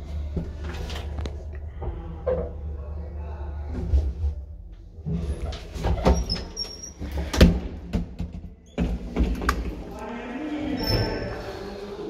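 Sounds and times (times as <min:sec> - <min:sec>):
low hum: 0:00.0 - 0:05.6.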